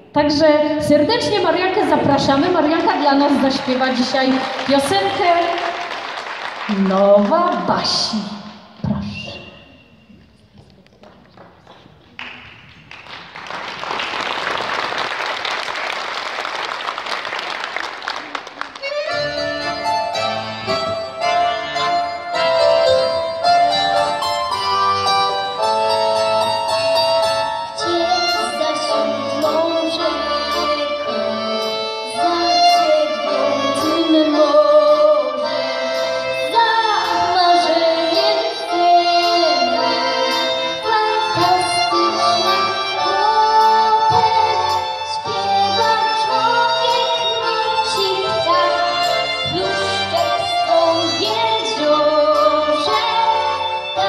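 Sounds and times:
school band playing pop song: 1.2 - 9.5, 13.0 - 54.0
audience applause: 2.6 - 7.4, 12.1 - 19.1
girl singing: 27.8 - 35.7, 36.3 - 54.0.

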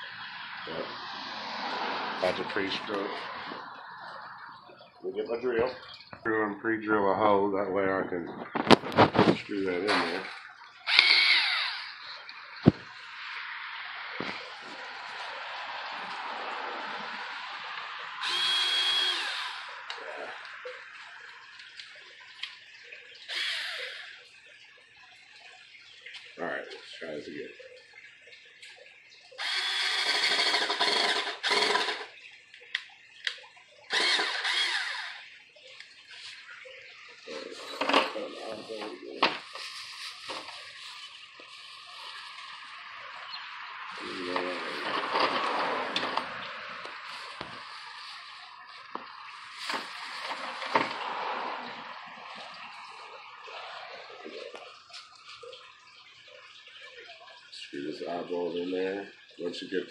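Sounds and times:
cordless drill boring wood: 10.9 - 12.0, 18.2 - 19.9, 23.3 - 24.2, 29.4 - 32.1, 33.9 - 35.2.

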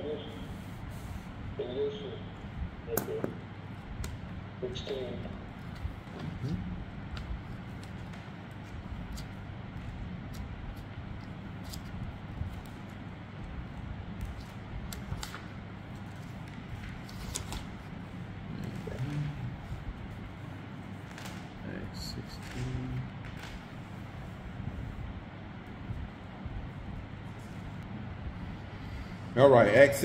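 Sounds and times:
low room hum: 0.0 - 30.0.

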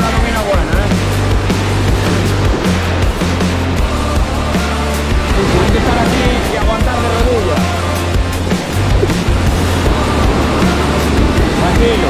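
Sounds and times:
music with steady beat and bass: 0.0 - 12.0.

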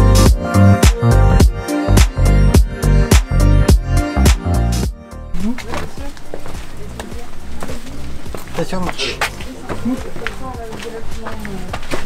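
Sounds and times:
background music: 0.0 - 12.0
footsteps on stone path: 5.3 - 12.0.

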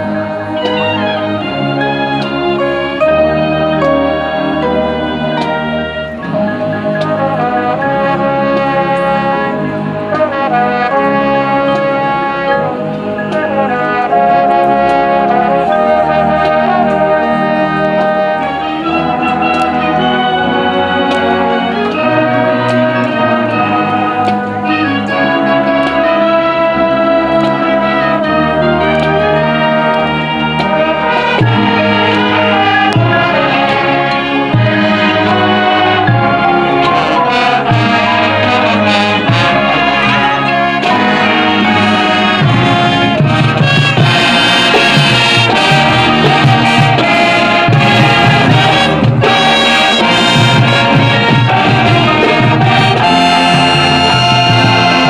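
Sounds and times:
percussion strikes: 0.0 - 55.0
sustained brass chords: 0.0 - 55.0.

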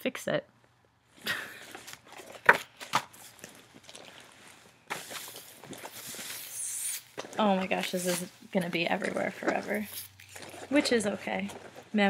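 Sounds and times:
tinsel crinkling and rustling: 3.1 - 12.0.

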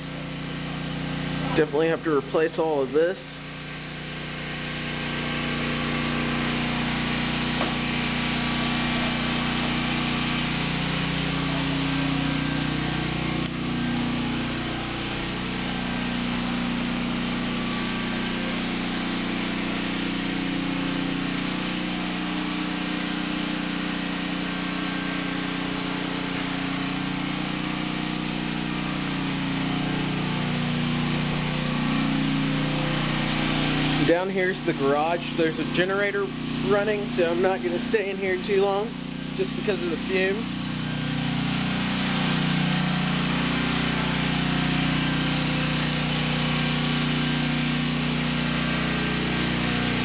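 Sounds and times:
generator engine droning: 0.0 - 50.0.

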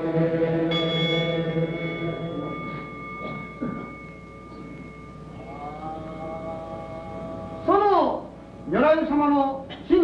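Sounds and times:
congregation chanting: 0.0 - 4.0, 5.3 - 8.3
steady ringing tone: 0.0 - 9.7.

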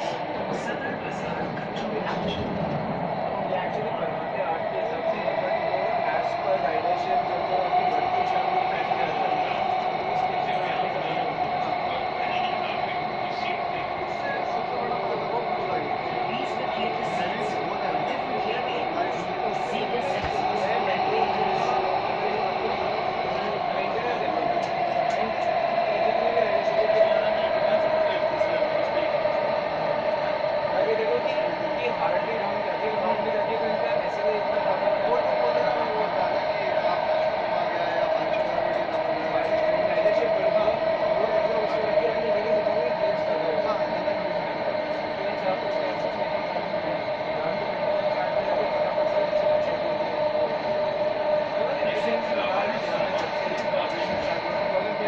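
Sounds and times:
train rumbling from inside car: 0.0 - 51.0, 51.6 - 55.0.

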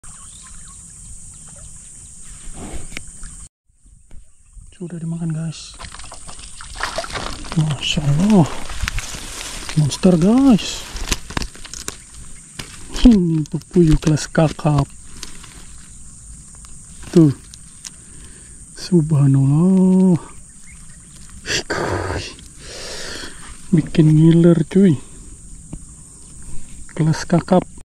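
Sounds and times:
bird chirps: 0.0 - 6.8, 14.8 - 21.5.

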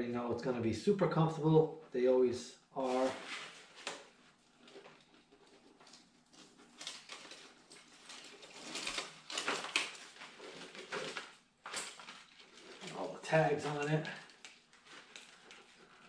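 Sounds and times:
packaging rustling and crinkling: 2.8 - 16.0.

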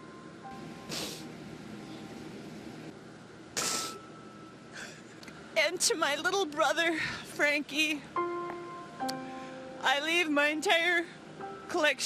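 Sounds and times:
faint background music: 0.0 - 12.0
woman gasping and sobbing: 4.7 - 5.5, 6.9 - 7.4.

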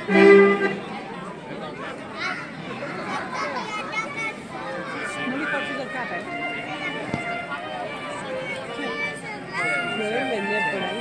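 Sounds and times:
crowd chattering and calling out: 0.0 - 11.0.

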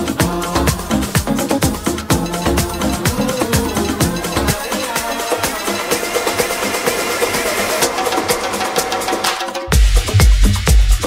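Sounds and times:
tech house percussion groove: 0.0 - 11.0.

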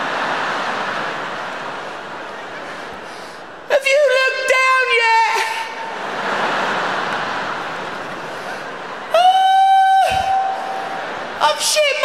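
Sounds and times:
arena audience laughing: 0.0 - 3.7, 5.6 - 9.3, 10.1 - 12.0.

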